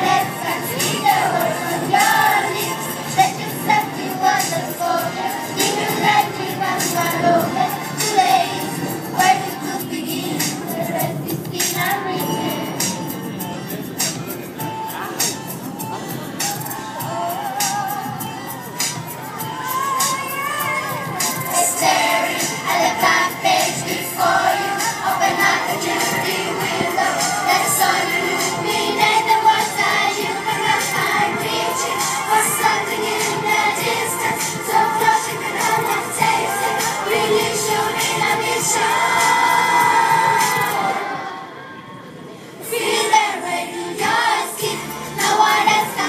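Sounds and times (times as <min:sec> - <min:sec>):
children singing: 0:00.0 - 0:12.9, 0:17.6 - 0:41.8, 0:42.6 - 0:46.0
backing music with a beat: 0:00.0 - 0:41.1, 0:42.8 - 0:46.0
crowd of children's voices: 0:00.0 - 0:46.0.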